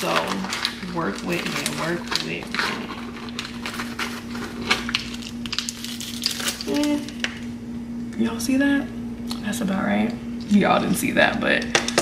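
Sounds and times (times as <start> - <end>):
plastic bag crinkling: 0.0 - 7.5
steady low hum: 0.0 - 12.0.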